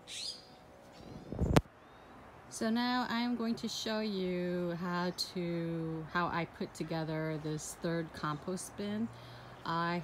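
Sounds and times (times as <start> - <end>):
bird chirping: 0.0 - 2.2.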